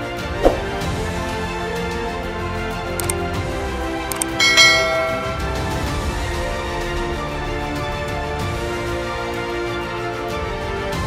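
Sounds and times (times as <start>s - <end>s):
background music: 0.0s - 11.0s
quick clicks: 3.0s - 3.2s, 4.1s - 5.4s
bright notification chime: 4.4s - 5.7s.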